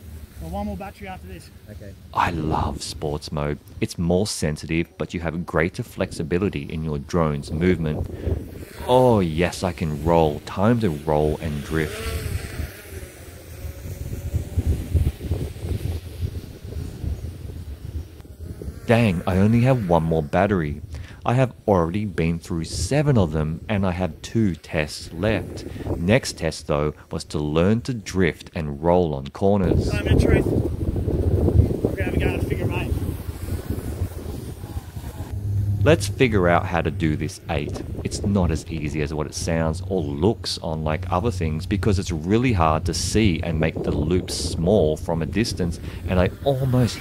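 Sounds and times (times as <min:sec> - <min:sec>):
faint drone propeller whine: 0:00.0 - 0:03.8, 0:04.7 - 0:27.5, 0:29.6 - 0:47.0
wind buffeting microphone: 0:05.6 - 0:26.6, 0:29.6 - 0:47.0.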